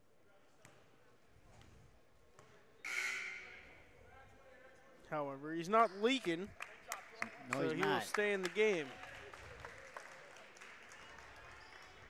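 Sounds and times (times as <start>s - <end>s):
gymnasium background: 0.0s - 9.6s.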